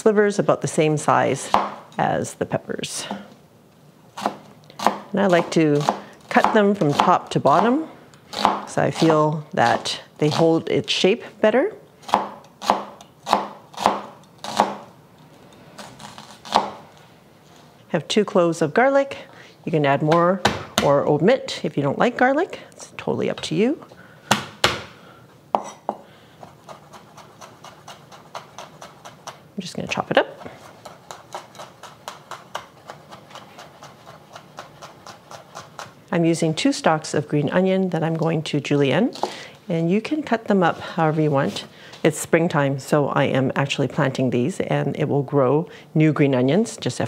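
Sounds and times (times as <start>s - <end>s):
knife chopping on wooden board: 1.5s - 1.8s, 12.1s - 14.8s
knife slicing onion on board: 12.0s - 14.9s, 26.4s - 29.4s, 30.4s - 36.0s.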